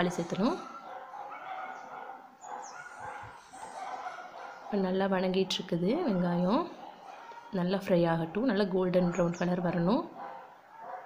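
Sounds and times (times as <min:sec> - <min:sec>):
dog howling: 0:00.6 - 0:04.8.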